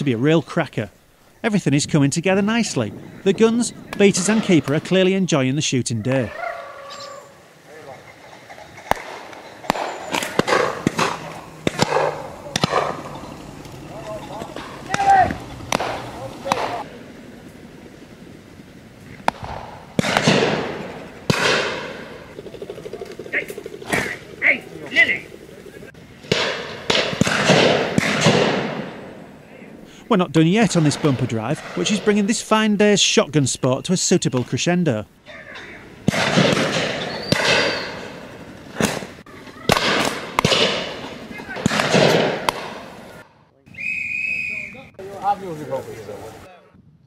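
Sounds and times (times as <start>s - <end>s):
shotgun shots echoing: 8.9s - 13.2s, 15.7s - 16.9s, 19.2s - 22.4s, 26.2s - 29.2s, 36.0s - 38.2s, 39.7s - 43.2s.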